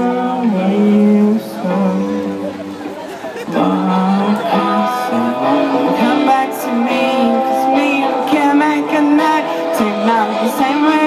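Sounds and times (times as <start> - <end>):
band guitars: 0.0 - 11.0
man singing long notes: 0.0 - 11.0.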